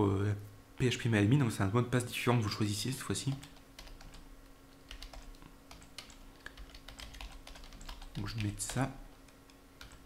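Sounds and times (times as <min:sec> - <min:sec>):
computer keyboard typing: 0:03.2 - 0:04.2, 0:04.9 - 0:09.0, 0:09.8 - 0:10.0.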